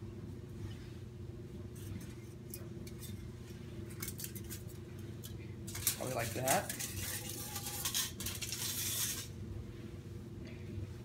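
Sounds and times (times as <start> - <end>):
low steady hum: 0.0 - 11.0
scissors snipping foil: 3.9 - 9.3
foil crackling: 5.7 - 9.4.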